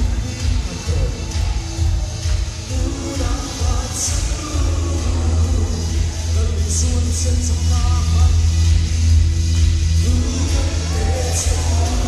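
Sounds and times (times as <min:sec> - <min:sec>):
man singing into microphone: 0:00.0 - 0:01.3, 0:02.6 - 0:08.7, 0:10.0 - 0:12.0
heavy steady bass: 0:00.0 - 0:12.0.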